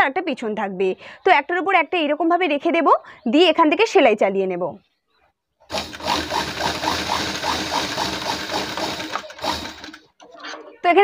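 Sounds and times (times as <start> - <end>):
sewing machine stitching: 5.7 - 10.2.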